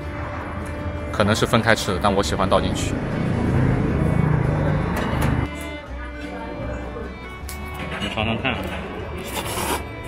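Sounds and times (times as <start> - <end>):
background music with held notes: 0.0 - 10.0.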